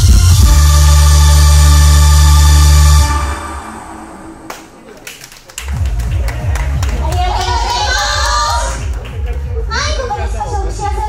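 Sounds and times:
audience clapping: 0:04.4 - 0:09.8
young women talking and calling out: 0:09.6 - 0:11.0.

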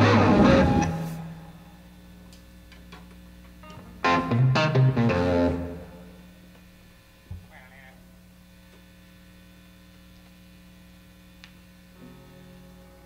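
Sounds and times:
amplifier mains hum: 0:00.0 - 0:13.0.

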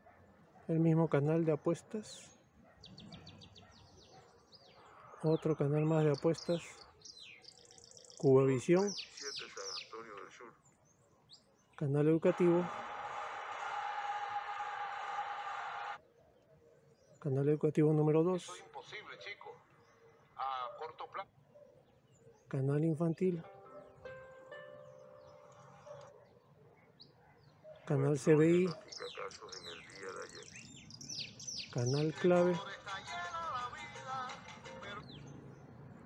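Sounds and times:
small birds chirping: 0:00.0 - 0:12.7, 0:16.0 - 0:36.0
television hiss-like broadcast sound: 0:12.3 - 0:16.0.

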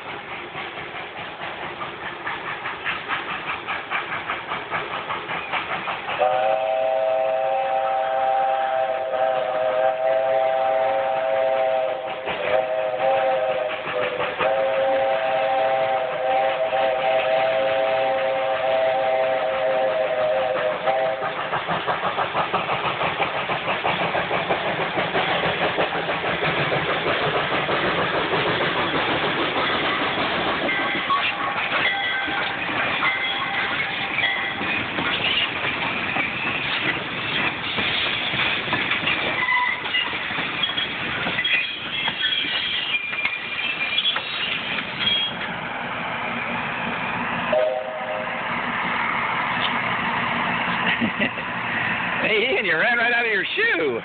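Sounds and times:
steam locomotive chuffing: 0:00.0 - 0:54.0
train cars clattering on rails: 0:00.0 - 0:54.0
steam whistle chord: 0:06.2 - 0:13.8, 0:14.4 - 0:21.2, 0:47.5 - 0:48.4.

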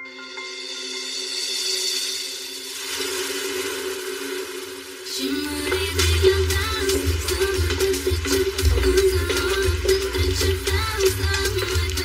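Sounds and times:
hissing cymbal-like swell: 0:00.0 - 0:11.0.

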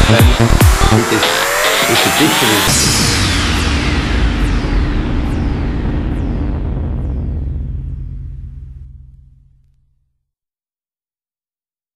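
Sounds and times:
electronic dance music: 0:00.0 - 0:05.6
low bass tone: 0:00.0 - 0:10.0.

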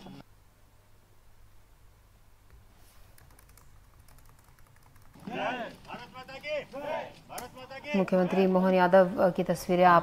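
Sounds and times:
person shouting a slogan: 0:05.3 - 0:05.7.

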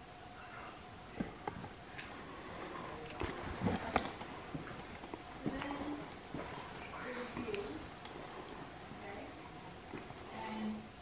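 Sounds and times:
footsteps on concrete: 0:03.2 - 0:07.7.

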